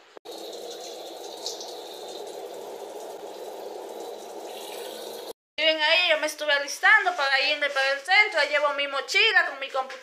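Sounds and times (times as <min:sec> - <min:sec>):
shower water spraying: 0:00.3 - 0:05.4.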